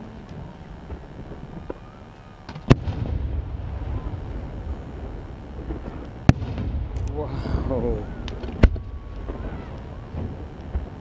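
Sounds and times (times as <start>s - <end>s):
low lingering rumble: 0.0s - 11.0s
faint firework cracks: 0.2s - 4.4s, 5.0s - 7.3s, 7.9s - 11.0s
firework bang: 2.5s - 11.0s.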